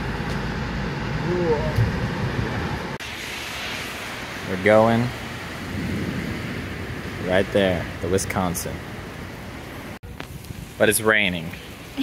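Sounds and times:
low rumble: 0.0s - 10.8s
steady rain hiss: 3.0s - 12.0s.

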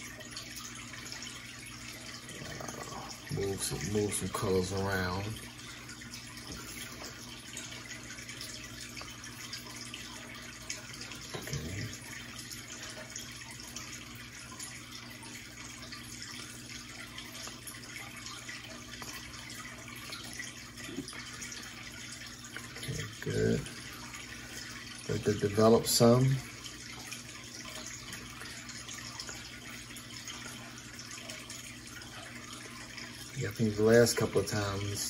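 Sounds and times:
aquarium filter trickling water: 0.0s - 35.0s.

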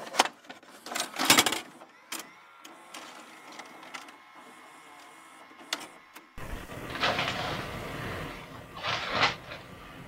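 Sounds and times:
tape transport whirring: 0.0s - 10.0s.

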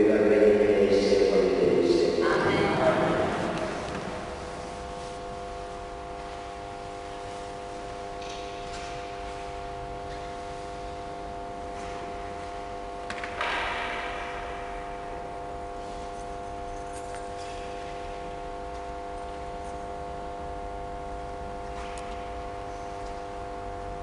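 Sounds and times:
hum of held tones: 0.0s - 24.0s.

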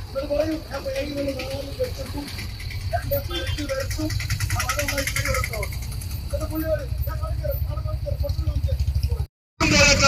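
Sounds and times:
small engines rumbling: 0.0s - 10.0s.

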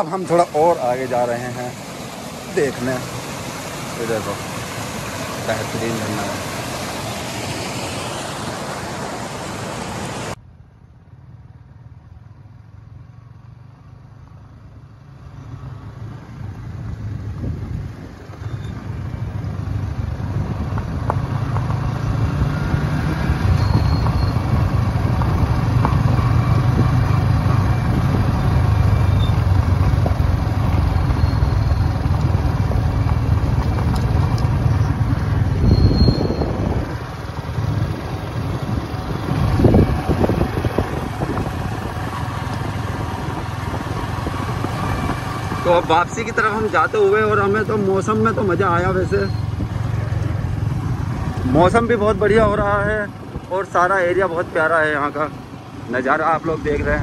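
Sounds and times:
motorcycle engine: 0.0s - 57.0s
tyres on gravel: 28.8s - 47.1s.

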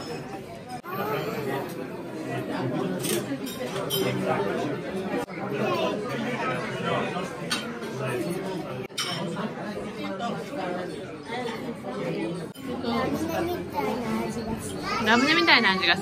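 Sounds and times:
many people talking: 0.0s - 16.0s.

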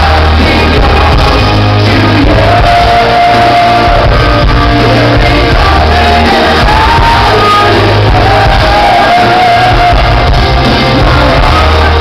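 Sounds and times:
live metal band playing: 0.0s - 12.0s
shouts: 5.9s - 10.2s.

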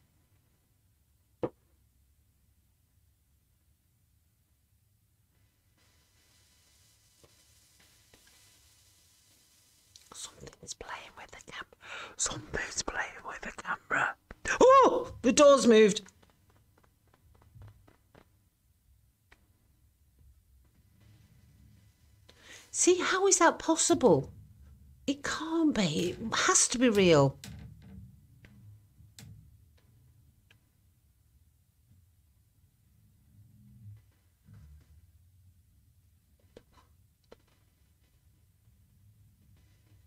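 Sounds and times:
person whispering: 10.1s - 15.9s.

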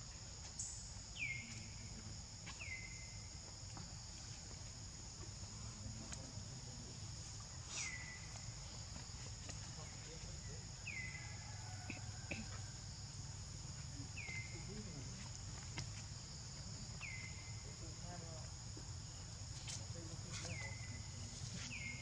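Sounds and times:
high-pitched insect chorus: 0.0s - 22.0s.

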